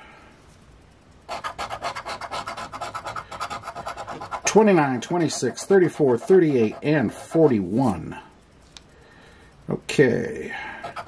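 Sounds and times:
coin scraping lottery ticket: 1.3 - 4.6.

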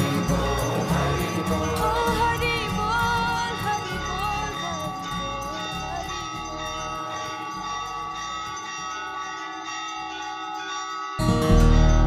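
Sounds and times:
temple bells ringing: 0.0 - 12.0.

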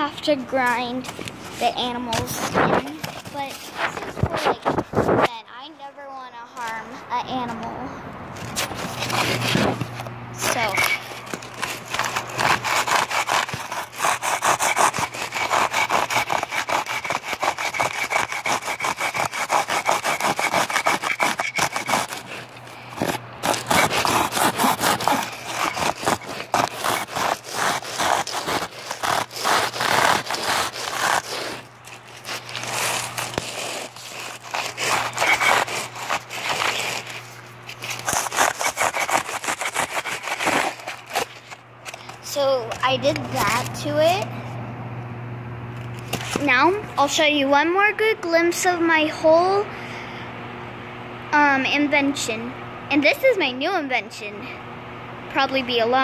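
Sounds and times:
low steady hum: 0.0 - 56.0
hand tool scraping a surface: 8.4 - 44.3.

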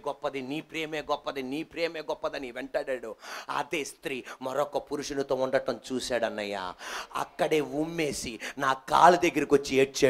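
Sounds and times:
man preaching through microphone: 0.0 - 10.0.

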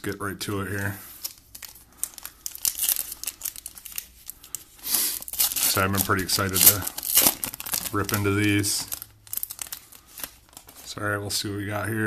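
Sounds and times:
foil wrapper crinkling: 0.0 - 11.2.

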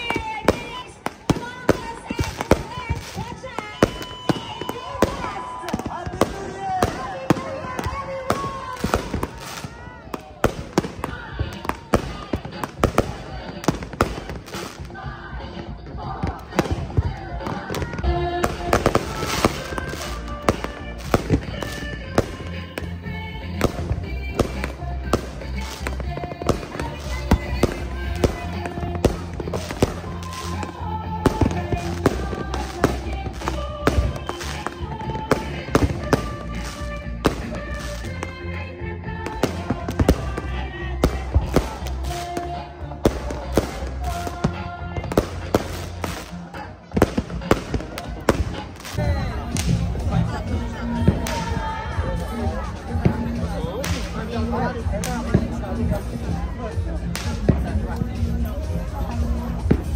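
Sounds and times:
crowd voices: 0.0 - 59.9
fireworks bangs and crackles: 0.0 - 59.9
music with steady bass line: 10.4 - 59.9.

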